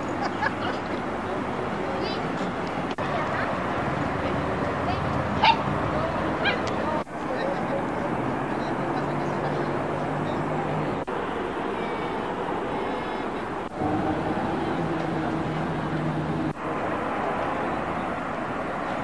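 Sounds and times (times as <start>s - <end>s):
traffic hum: 0.0s - 19.0s
dog barking: 5.4s - 5.7s, 6.4s - 6.6s.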